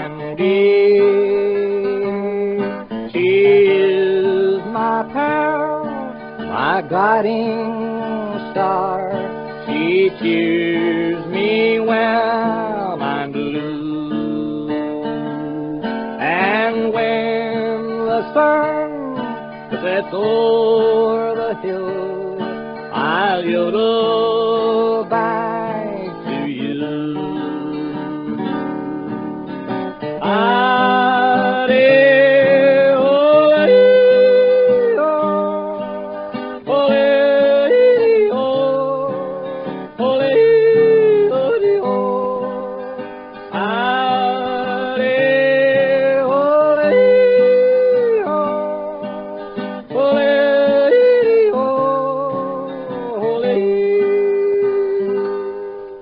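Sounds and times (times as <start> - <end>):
country music: 0.0 - 56.0
strummed acoustic guitar: 0.0 - 56.0
man yodeling: 30.2 - 36.1, 43.6 - 49.1, 49.9 - 56.0.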